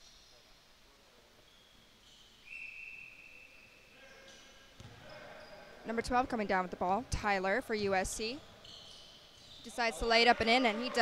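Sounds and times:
faint referee whistle: 1.5s - 4.0s.

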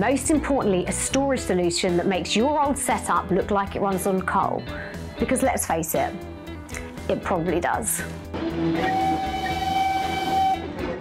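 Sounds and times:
steam locomotive whistle: 8.7s - 11.0s.

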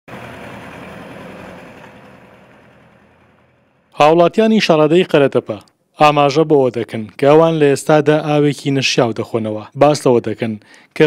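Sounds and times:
tractor engine running: 0.1s - 4.0s.

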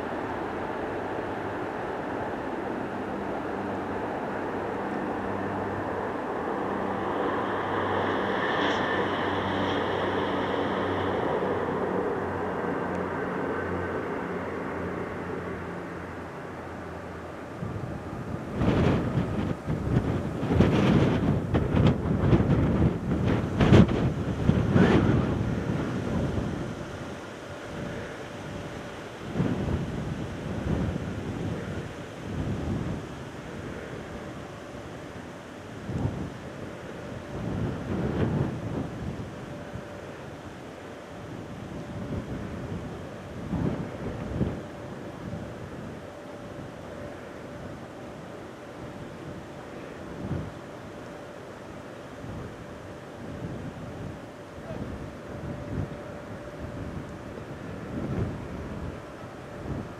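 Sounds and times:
wind buffeting microphone: 0.0s - 50.8s, 52.2s - 59.9s
jet engines rumbling: 0.0s - 59.9s.

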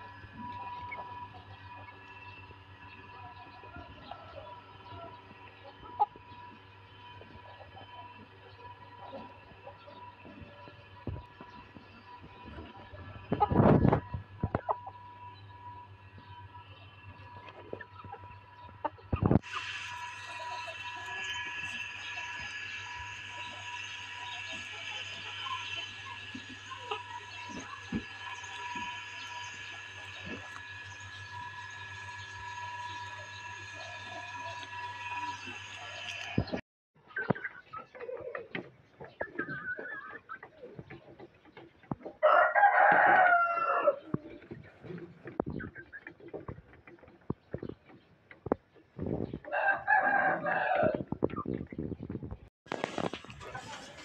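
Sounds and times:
high-pitched hum: 0.0s - 36.6s
steady background hum: 0.0s - 36.6s
chickens clucking: 0.0s - 54.0s.

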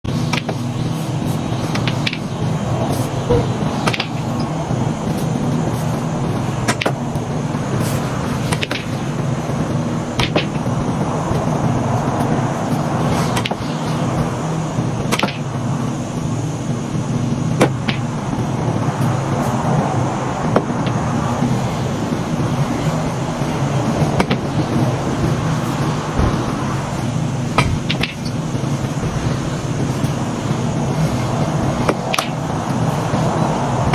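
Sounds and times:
steady low hum: 0.0s - 33.9s
pool balls clicking: 0.3s - 0.7s, 1.7s - 2.3s, 3.3s - 5.6s, 6.6s - 7.2s, 10.2s - 10.7s, 13.3s - 13.7s, 27.6s - 28.4s.

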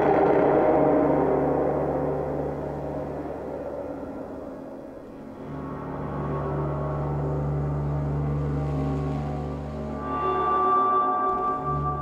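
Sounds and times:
low drone: 0.0s - 12.0s.

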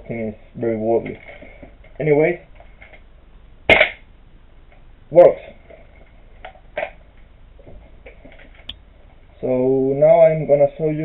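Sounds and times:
airsoft rifle shot: 3.7s - 4.1s.

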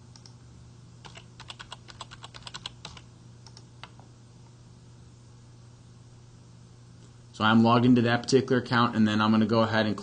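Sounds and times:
steady low hum: 0.0s - 10.0s
typing on computer keyboard: 1.0s - 4.0s.

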